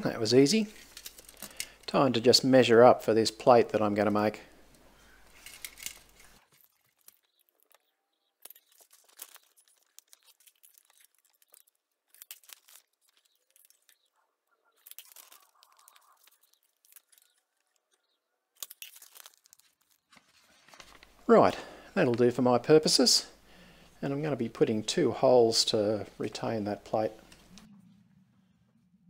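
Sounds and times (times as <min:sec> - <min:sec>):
paper being handled: 0:05.3 - 0:14.0, 0:18.6 - 0:21.3.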